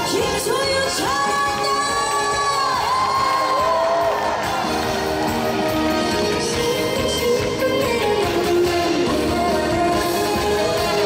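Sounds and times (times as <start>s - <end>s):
live band playing: 0.0s - 11.0s
woman singing: 0.0s - 11.0s
audience cheering: 2.3s - 6.2s.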